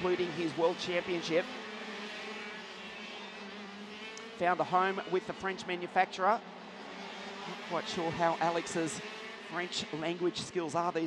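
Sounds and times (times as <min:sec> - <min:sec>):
kart engines droning: 0:00.0 - 0:11.0.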